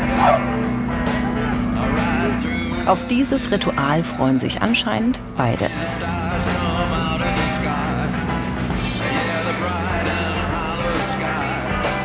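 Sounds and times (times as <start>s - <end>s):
background music: 0.0s - 12.0s
steady low hum: 0.0s - 12.0s
dog yelp: 0.1s - 0.5s.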